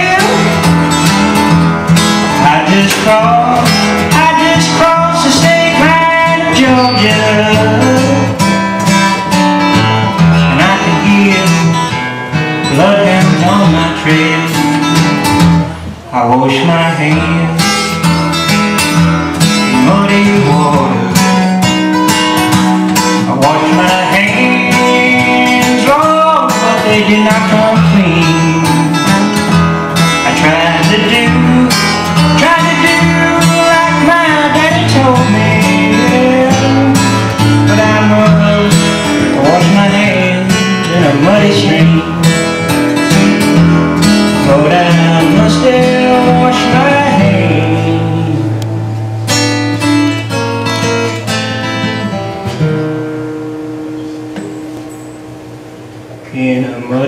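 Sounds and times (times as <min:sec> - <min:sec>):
blues guitar playing: 0:00.0 - 0:57.0.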